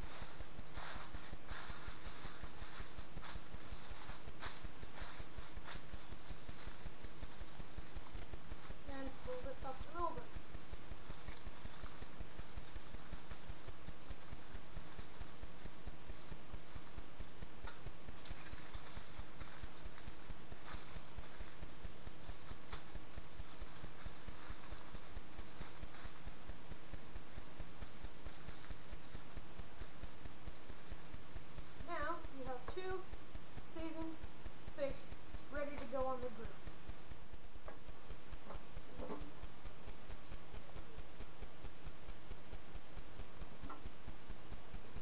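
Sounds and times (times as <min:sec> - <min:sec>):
aluminium foil crinkling: 0:00.0 - 0:40.2
low pulsing background noise: 0:00.0 - 0:45.0.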